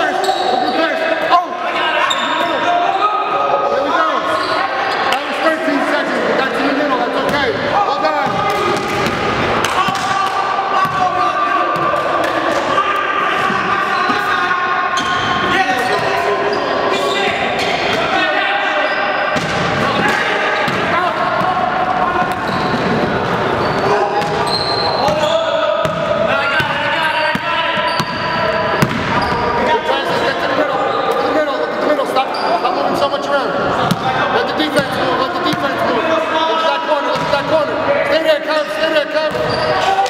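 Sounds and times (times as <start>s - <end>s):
players calling out: 0.0s - 40.0s
basketball bouncing on hardwood floor: 28.8s - 29.1s.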